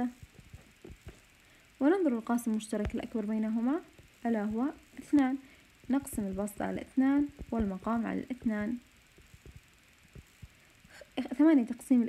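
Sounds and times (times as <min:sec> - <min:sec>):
faint low taps: 0:00.2 - 0:01.3, 0:05.9 - 0:10.6.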